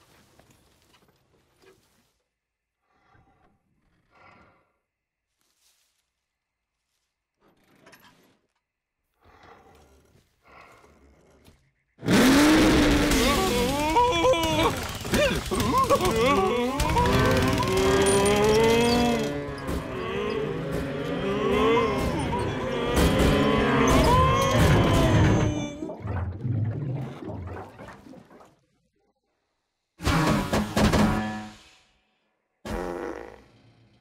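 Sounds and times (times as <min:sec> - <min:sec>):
low fart-like sputter: 0:12.0 - 0:13.5, 0:32.6 - 0:34.0
cartoon mooing: 0:12.1 - 0:25.9.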